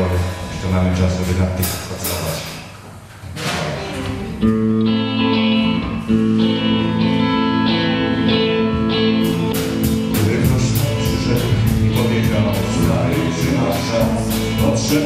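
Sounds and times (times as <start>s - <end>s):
electric guitar and keyboard chords: 0.0s - 2.6s, 3.4s - 15.0s
drums steady beat: 1.2s - 2.8s, 8.8s - 15.0s.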